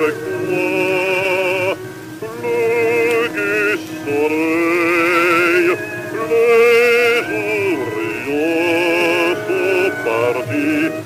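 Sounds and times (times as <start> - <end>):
bass-baritone voice singing: 0.0 - 11.0.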